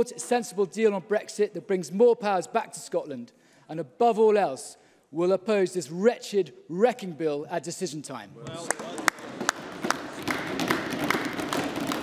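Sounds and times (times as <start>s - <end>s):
steady hand claps: 8.5s - 12.0s
crowd applauding: 8.6s - 12.0s.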